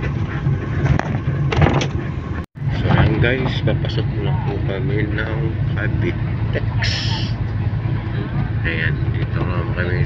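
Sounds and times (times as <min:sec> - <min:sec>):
bus engine and road noise: 0:00.0 - 0:10.0.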